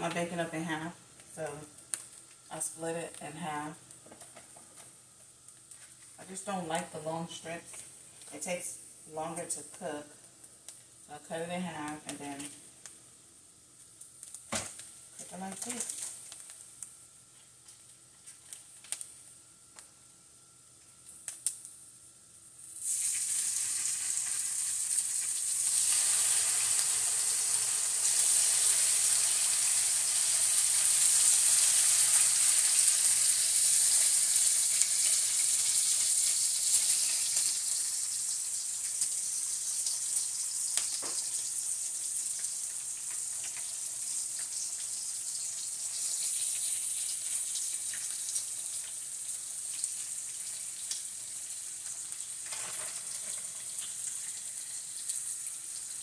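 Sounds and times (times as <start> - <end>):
bacon sizzling in a frying pan: 0.0 - 56.0.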